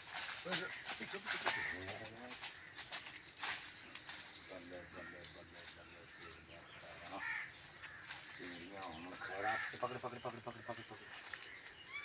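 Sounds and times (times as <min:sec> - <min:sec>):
small birds chirping: 0:00.0 - 0:12.0
crow cawing: 0:00.5 - 0:03.0, 0:04.9 - 0:05.3, 0:07.1 - 0:11.1.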